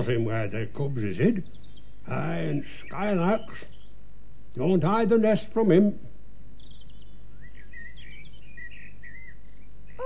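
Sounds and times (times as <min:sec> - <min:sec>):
robin singing: 0:00.0 - 0:10.0.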